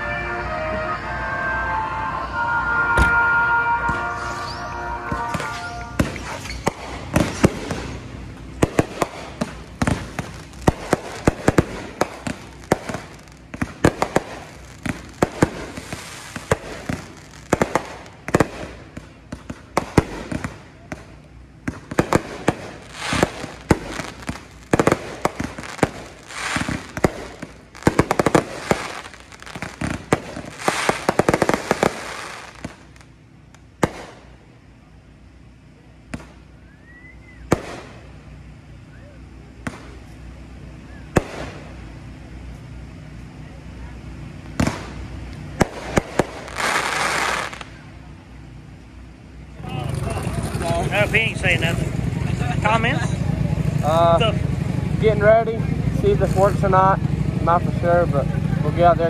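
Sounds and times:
fireworks bangs and crackling: 0:00.6 - 0:34.6, 0:36.0 - 0:36.6, 0:37.5 - 0:38.6, 0:39.6 - 0:43.2, 0:44.1 - 0:59.0.

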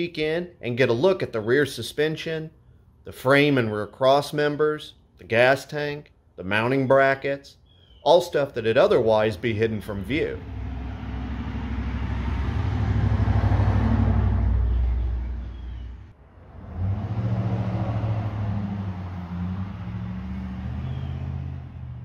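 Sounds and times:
vehicle engine rumbling: 0:07.9 - 0:22.0.

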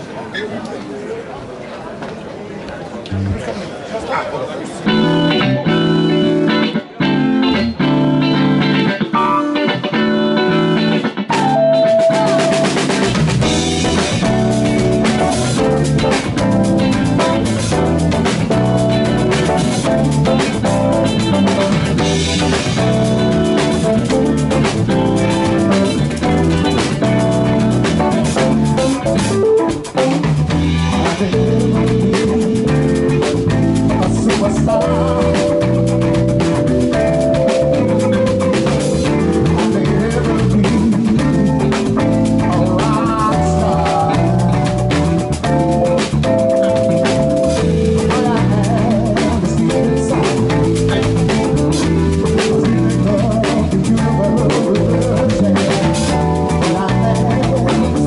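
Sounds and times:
bass guitar: 0:03.1 - 0:03.6, 0:04.8 - 0:58.0
electric guitar: 0:04.8 - 0:58.0
held keyboard chords: 0:04.8 - 0:58.0
live blues band playing: 0:04.8 - 0:58.0
drum kit: 0:04.9 - 0:58.0.

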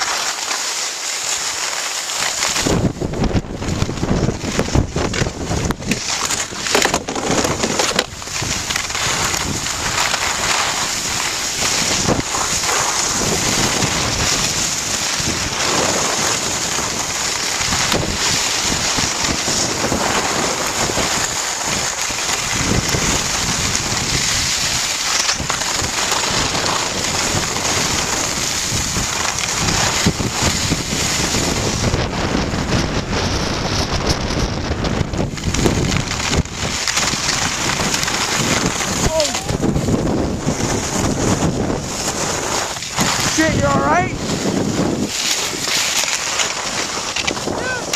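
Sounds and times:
skis scraping on packed snow: 0:00.0 - 0:47.9
wind rushing over microphone: 0:02.3 - 0:47.9.

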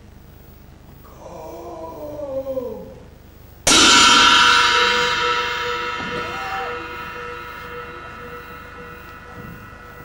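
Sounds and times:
chamber ensemble holding chord: 0:03.7 - 0:10.0.

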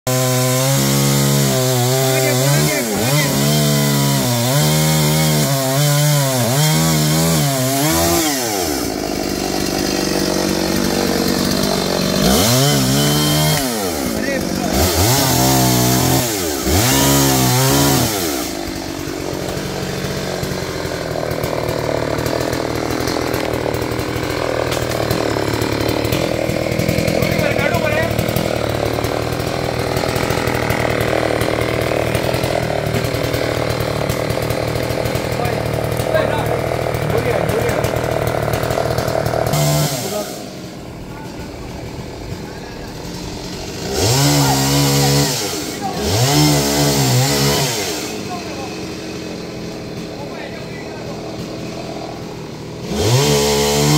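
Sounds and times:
chainsaw cutting wood: 0:00.1 - 0:53.9.

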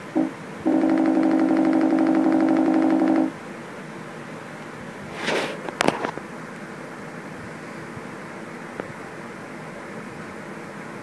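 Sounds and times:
buzzy electronic tone with flutter: 0:00.0 - 0:03.3.

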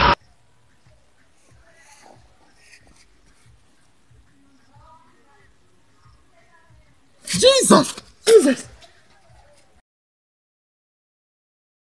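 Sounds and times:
man shouting startled: 0:07.3 - 0:08.8.

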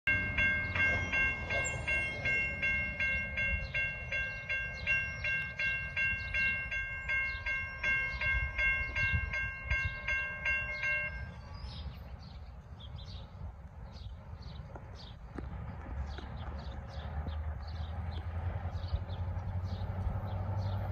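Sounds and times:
crossing bell ringing: 0:00.1 - 0:12.2.

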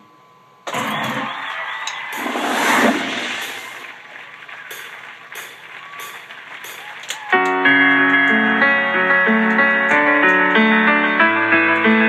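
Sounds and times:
jet airplane rush: 0:02.1 - 0:05.6.

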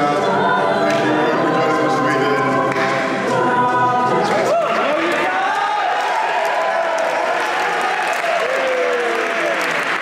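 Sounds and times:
a cappella group singing chords: 0:00.0 - 0:06.9.

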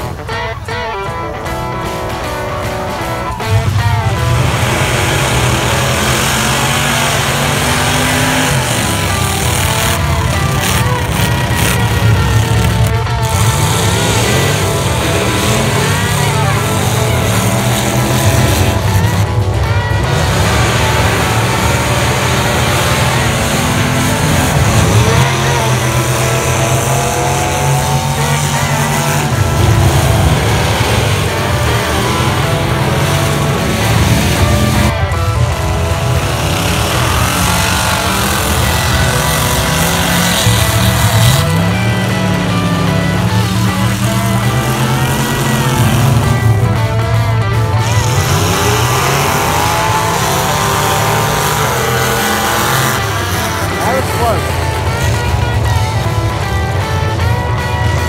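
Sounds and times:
truck engines revving: 0:00.0 - 0:58.0.

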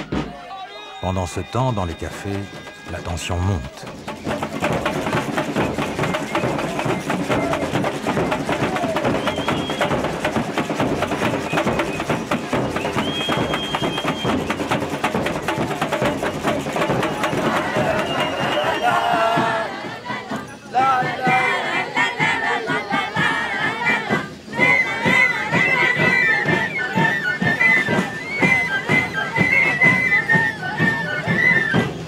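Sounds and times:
crowd voices: 0:00.0 - 0:32.0
drums beating fast rhythm: 0:00.0 - 0:32.0.

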